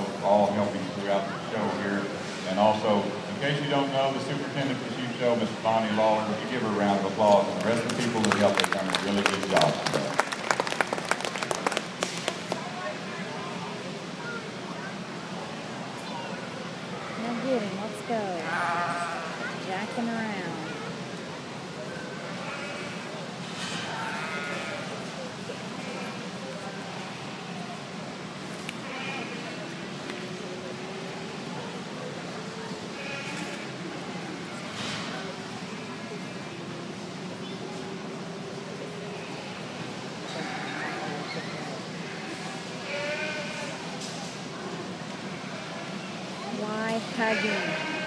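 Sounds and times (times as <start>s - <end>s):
murmur of arena crowd: 0.0s - 48.0s
lamb bleating: 18.4s - 19.3s, 22.4s - 23.0s, 24.0s - 24.8s, 40.4s - 41.0s, 42.9s - 43.8s, 47.2s - 48.0s.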